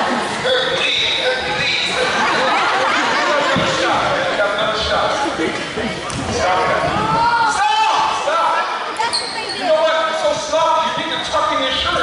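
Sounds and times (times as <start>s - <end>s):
people's voices in a hall: 0.0s - 12.0s.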